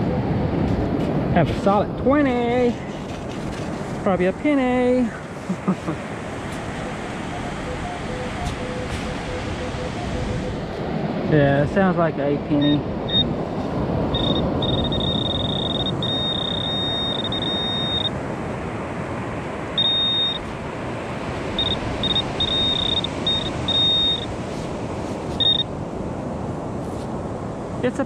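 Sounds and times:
steady background rush: 0.0s - 28.0s
metal detector alert beeps: 6.9s - 10.6s, 12.5s - 13.3s, 14.1s - 18.2s, 19.8s - 20.5s, 21.6s - 24.3s, 25.4s - 25.7s.

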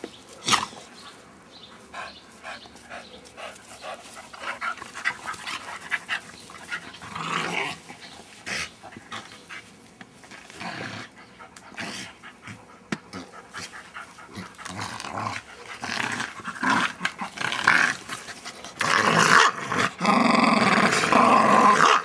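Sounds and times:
dogs breathing hard: 0.4s - 17.4s, 18.0s - 18.9s.

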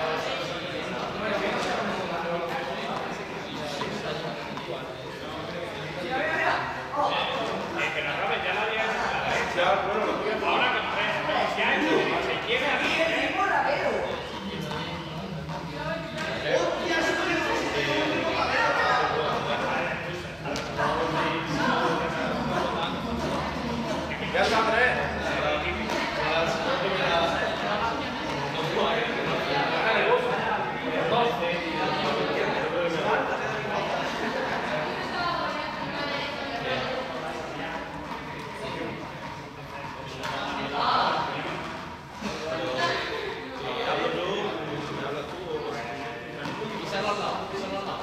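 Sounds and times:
indistinct chatter of people: 0.0s - 48.0s.

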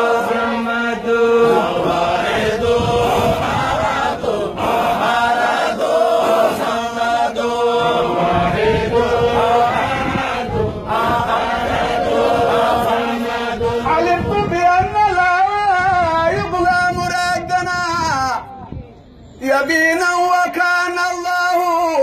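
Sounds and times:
men chanting together: 0.0s - 14.0s.

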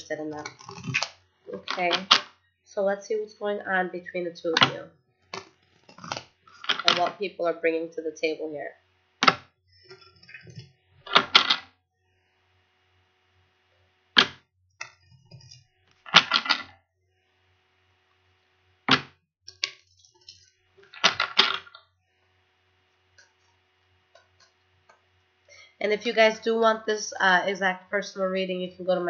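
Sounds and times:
cards being shuffled: 16.1s - 16.7s, 20.9s - 21.7s.

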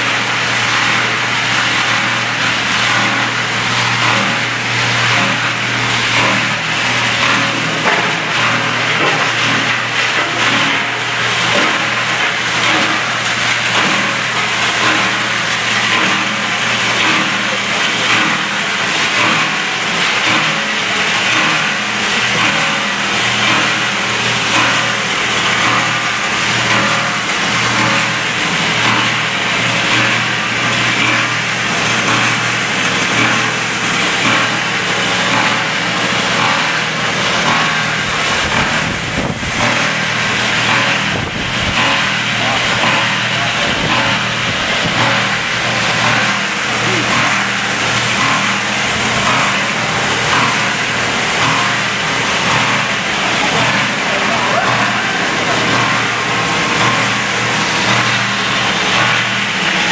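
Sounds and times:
plastic granulator running: 0.0s - 59.9s.

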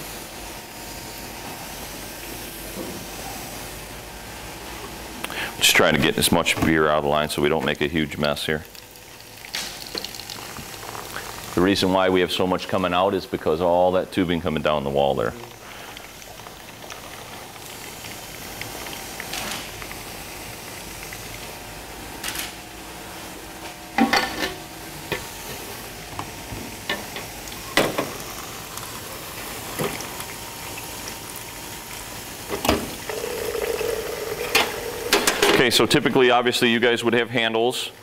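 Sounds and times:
beer pouring with foamy hiss: 0.0s - 38.0s
glass pitchers clinking: 33.1s - 35.8s.

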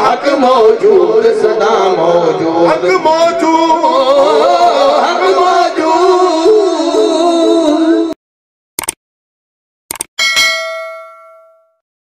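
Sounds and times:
bell ringing: 10.2s - 11.8s.

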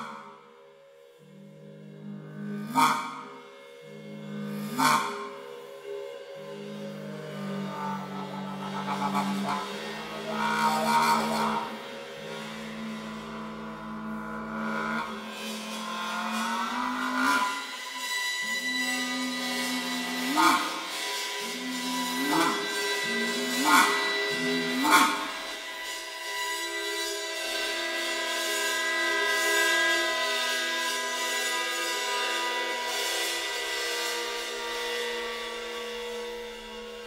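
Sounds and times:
wind instruments sustained chord: 0.0s - 29.5s
bowed cymbal ringing: 0.0s - 37.0s
muted trombone: 4.1s - 5.3s, 6.7s - 17.7s, 19.0s - 25.6s.

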